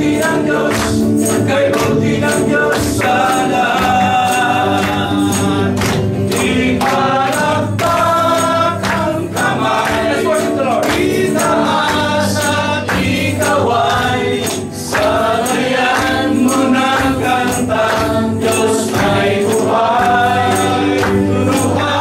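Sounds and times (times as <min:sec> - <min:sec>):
congregation singing gospel song: 0:00.0 - 0:22.0
electric guitar: 0:00.0 - 0:22.0
male voices leading singing: 0:00.0 - 0:22.0
steady percussive beat: 0:00.0 - 0:22.0.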